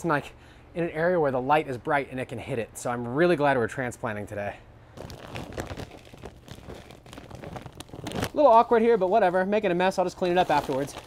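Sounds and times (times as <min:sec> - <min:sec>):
plastic bag crinkling: 0:05.0 - 0:09.0, 0:10.0 - 0:11.0.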